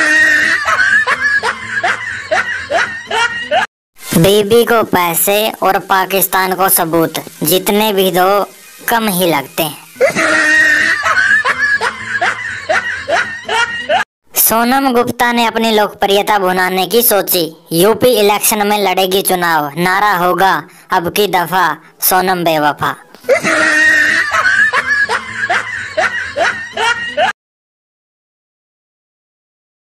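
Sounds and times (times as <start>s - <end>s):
person giggling: 0.0s - 3.7s, 10.0s - 14.0s, 23.2s - 27.3s
person laughing: 0.0s - 3.7s, 10.0s - 14.0s, 23.2s - 27.4s.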